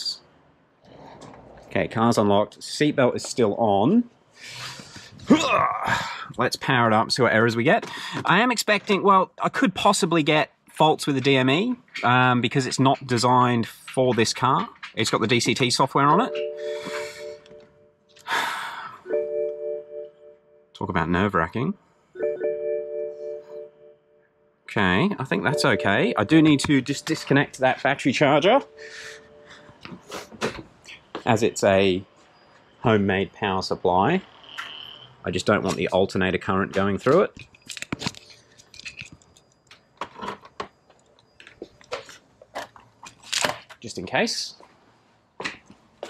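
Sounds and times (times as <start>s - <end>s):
car warning chime: 16.0s - 18.0s, 19.0s - 20.8s, 22.2s - 24.2s, 25.0s - 29.8s.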